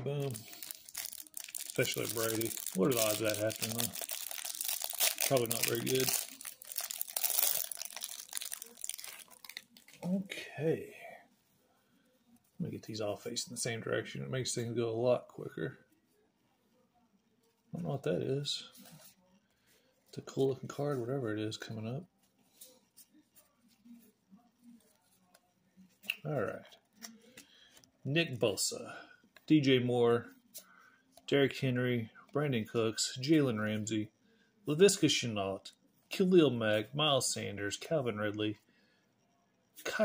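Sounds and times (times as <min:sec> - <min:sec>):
plastic wrapper crinkling: 0:00.0 - 0:10.1
trading cards being shuffled: 0:00.0 - 0:10.1.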